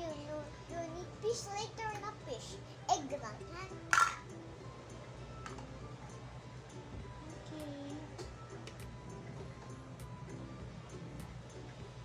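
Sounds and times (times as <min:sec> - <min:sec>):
girl making wordless sounds: 0:07.2 - 0:08.3.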